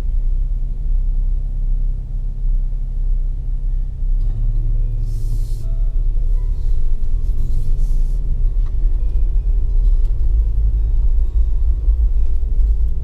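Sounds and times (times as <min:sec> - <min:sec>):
car driving slowly rumble: 0:00.0 - 0:13.0
brief hiss: 0:05.0 - 0:05.8.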